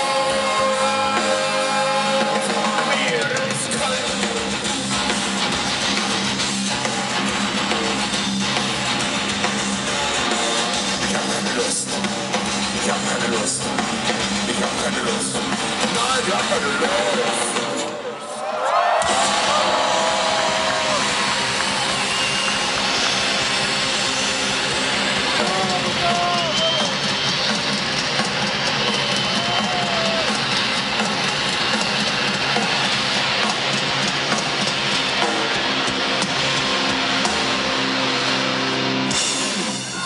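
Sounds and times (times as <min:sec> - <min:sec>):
guitar wails: 0:00.0 - 0:11.5, 0:18.9 - 0:40.0
heavy metal band playing live: 0:00.0 - 0:18.2, 0:19.0 - 0:40.0.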